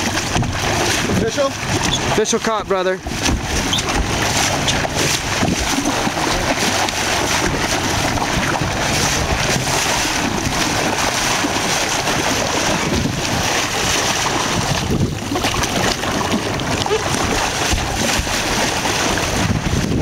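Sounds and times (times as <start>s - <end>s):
sea water rushing along hull: 0.0s - 20.0s
wind buffeting microphone: 0.0s - 20.0s.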